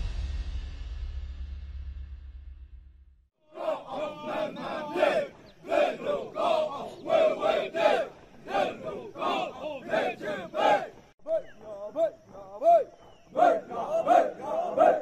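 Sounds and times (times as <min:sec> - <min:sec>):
group chanting running cadence: 0:03.4 - 0:15.0.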